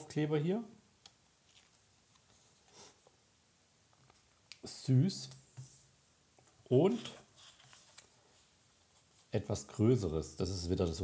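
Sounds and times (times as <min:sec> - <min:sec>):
soft paper rustle: 0:01.4 - 0:03.2, 0:05.3 - 0:09.9, 0:10.5 - 0:11.0.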